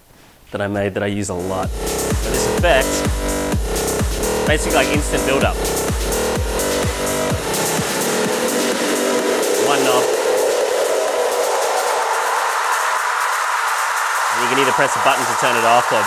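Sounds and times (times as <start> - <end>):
electronic dance loop: 1.4 - 16.0
kick drum: 1.7 - 8.4
rising wash of noise: 1.7 - 16.0.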